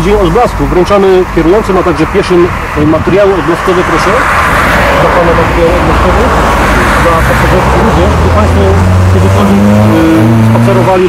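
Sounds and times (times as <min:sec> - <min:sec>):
cars passing: 0:00.0 - 0:11.0
engine hum rising in pitch: 0:03.5 - 0:11.0.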